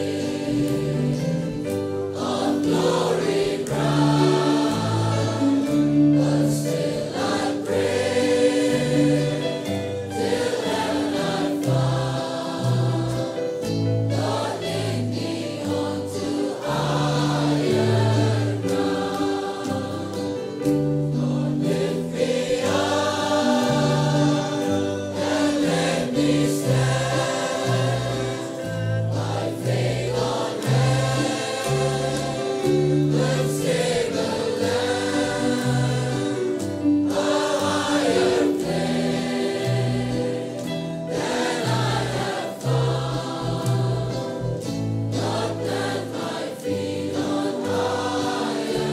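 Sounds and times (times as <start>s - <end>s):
choir singing: 0.0s - 48.9s.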